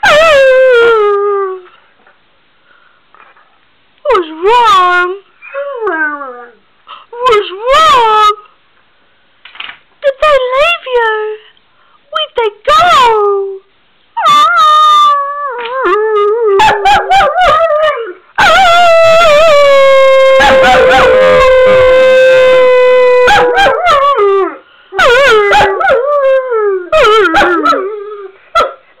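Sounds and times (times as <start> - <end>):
dog howling: 14.2 - 28.2.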